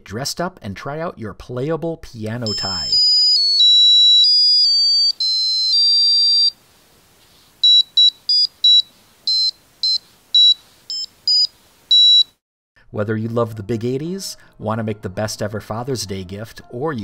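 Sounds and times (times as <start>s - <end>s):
high-pitched electronic beeping notes: 2.5s - 6.6s, 7.6s - 12.3s.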